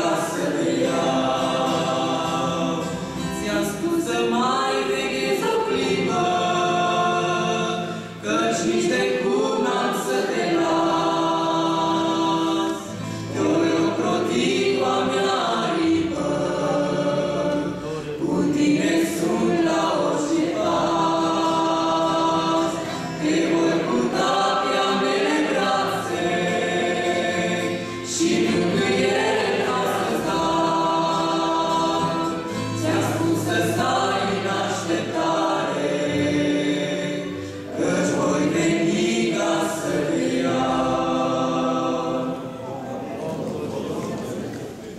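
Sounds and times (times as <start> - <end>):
voices singing a worship song: 0.0 - 44.8
acoustic guitar: 0.0 - 44.9.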